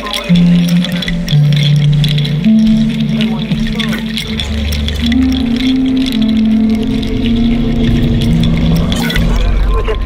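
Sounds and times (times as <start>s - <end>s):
high clicks: 0.0s - 9.6s
low bass: 0.0s - 10.0s
synthesizer drone: 0.0s - 10.0s.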